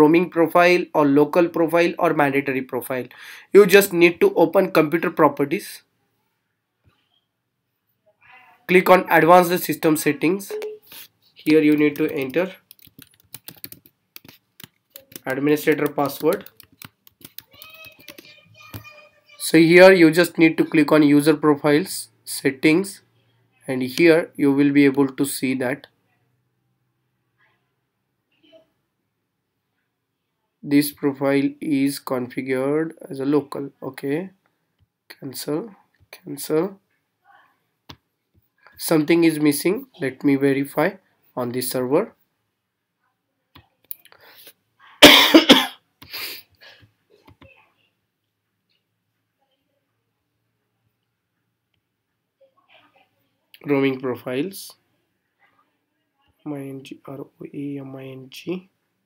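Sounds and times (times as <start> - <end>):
keyboard keys tapping: 11.5 - 18.9
person coughing: 45.0 - 45.8.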